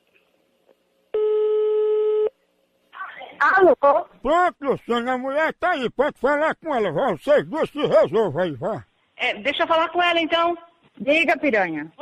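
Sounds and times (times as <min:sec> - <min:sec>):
telephone ringback tone: 0:01.2 - 0:02.3.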